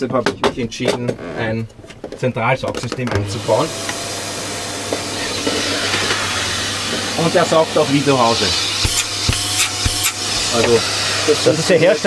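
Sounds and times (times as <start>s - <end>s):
vacuum air rushing hiss: 3.4s - 12.0s.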